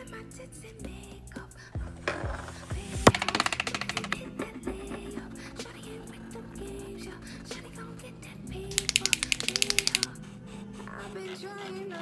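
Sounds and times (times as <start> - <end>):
background music: 0.0 - 12.0
paint marker ball clacking: 3.0 - 5.2, 8.7 - 10.1.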